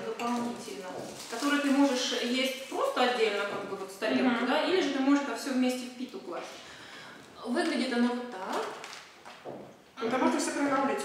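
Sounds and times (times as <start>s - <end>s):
woman speaking: 0.0s - 6.7s, 7.4s - 8.8s, 10.0s - 11.0s.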